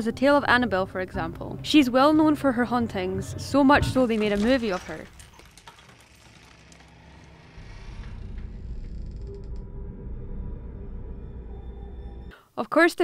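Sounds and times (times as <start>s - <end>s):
faint creaks and clicks: 4.1s - 9.7s
low rumbling drone: 6.4s - 12.3s.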